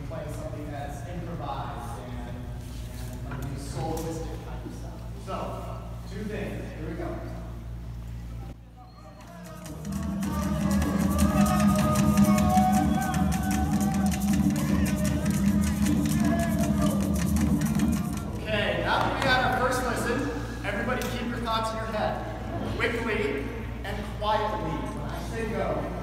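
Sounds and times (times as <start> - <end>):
drum and shaker music over loudspeaker: 9.2 - 20.2.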